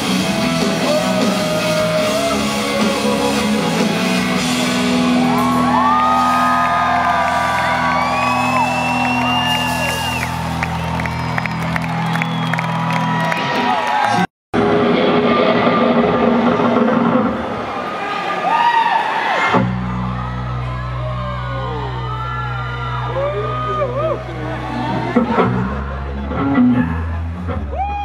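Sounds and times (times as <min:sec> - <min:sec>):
crowd cheering and whooping: 0:00.0 - 0:28.0
shouts: 0:00.7 - 0:03.4, 0:05.1 - 0:14.3, 0:17.8 - 0:25.2, 0:27.7 - 0:28.0
high whistles: 0:07.6 - 0:13.4.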